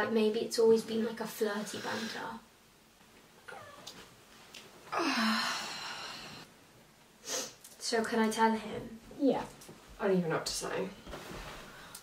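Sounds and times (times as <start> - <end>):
woman whimpering: 4.9 - 6.2.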